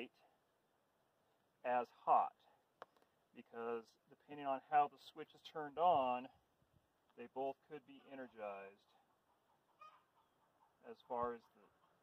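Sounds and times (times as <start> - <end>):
chicken clucking: 7.8 - 12.0.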